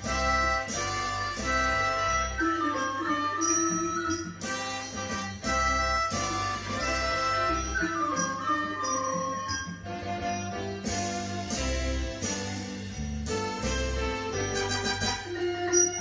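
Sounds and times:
band accompaniment with bass: 0:00.0 - 0:16.0.

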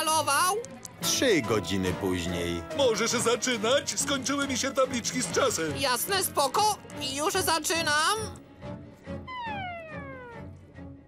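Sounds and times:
soft background music: 0:00.0 - 0:11.0
falling whistle-like tone: 0:09.2 - 0:10.5.

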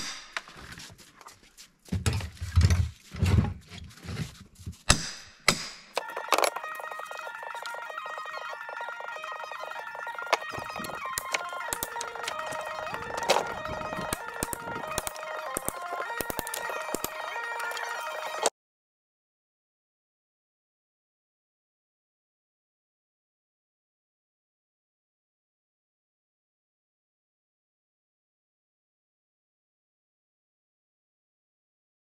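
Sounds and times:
background music: 0:06.0 - 0:18.5.

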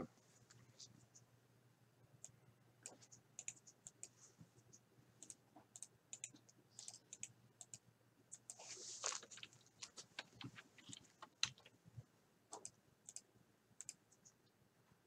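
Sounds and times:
keyboard and mouse clicking: 0:02.2 - 0:04.2, 0:05.2 - 0:08.6, 0:09.2 - 0:11.7, 0:12.5 - 0:14.5.

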